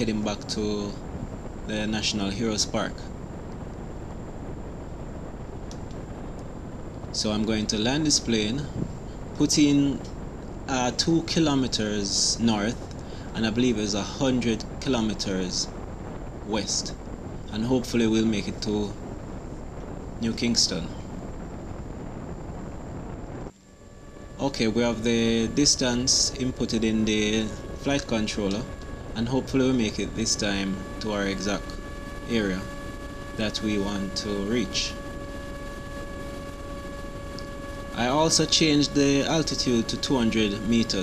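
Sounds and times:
faint high whine: 0:00.0 - 0:41.0
wind rumble on microphone: 0:00.0 - 0:41.0.

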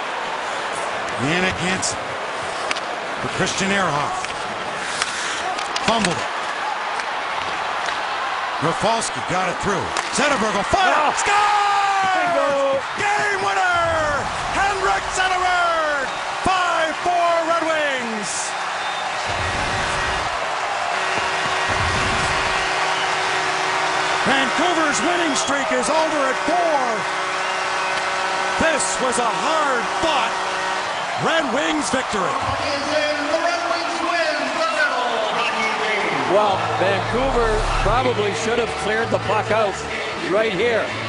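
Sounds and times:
crowd cheering: 0:00.0 - 0:41.0.

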